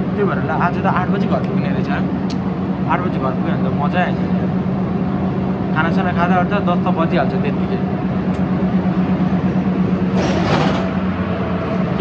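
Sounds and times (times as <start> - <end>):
bus interior hum: 0.0 - 12.0.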